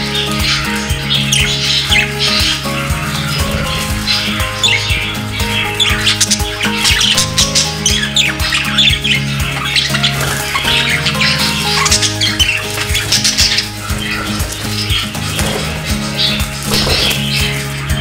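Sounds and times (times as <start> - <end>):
background music with held notes: 0.0 - 18.0
budgerigars chirping and squawking: 0.0 - 18.0.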